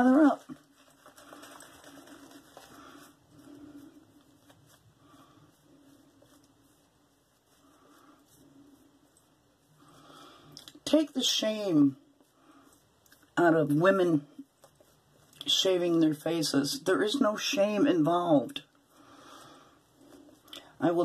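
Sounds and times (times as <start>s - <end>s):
shaving brush swishing on face: 0.0s - 18.4s.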